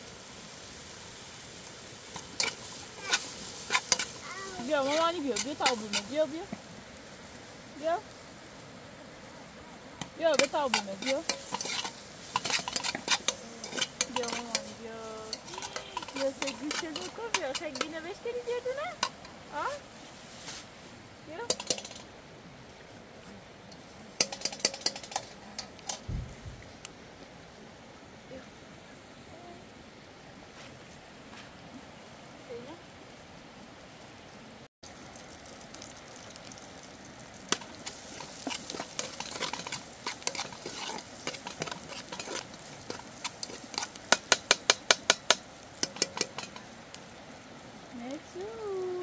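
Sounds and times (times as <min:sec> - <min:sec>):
food sizzling in a pot: 0:00.0 - 0:49.0
sharp clicks and crackles: 0:10.0 - 0:19.4, 0:21.4 - 0:22.1, 0:23.8 - 0:26.1, 0:37.4 - 0:46.7.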